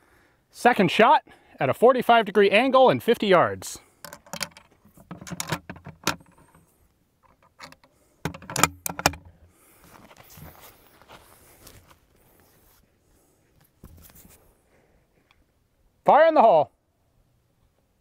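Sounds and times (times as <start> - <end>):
metallic clicks of rifle handling: 4.0 - 9.4
soft rustling: 9.6 - 15.4.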